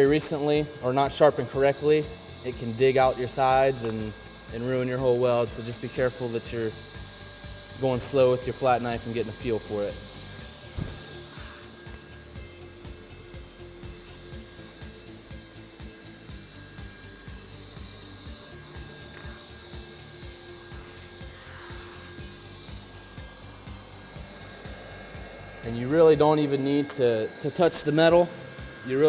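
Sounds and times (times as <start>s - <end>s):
hot-air gun blower whirring: 0.0s - 29.0s.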